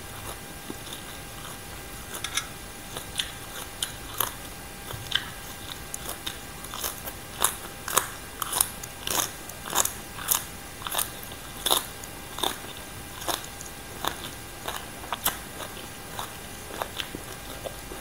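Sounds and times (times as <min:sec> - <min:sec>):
person chewing crunchy vegetables: 0:00.0 - 0:18.0.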